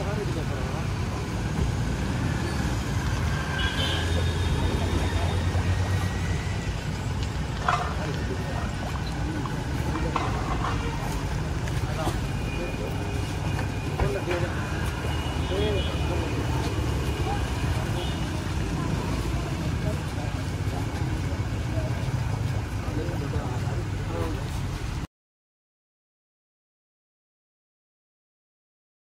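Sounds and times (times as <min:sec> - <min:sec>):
street traffic rumble: 0:00.0 - 0:25.1
men talking over one another: 0:04.0 - 0:24.7.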